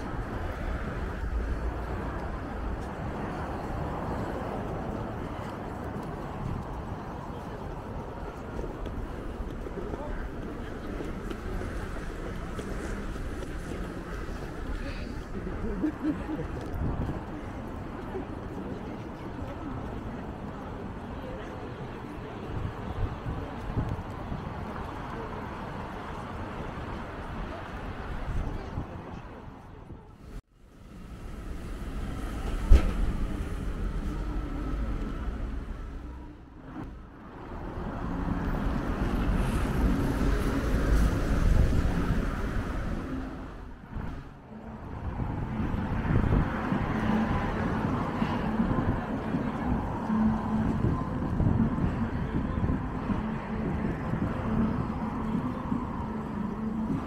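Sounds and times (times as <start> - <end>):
cars and buses passing: 0.0 - 57.0.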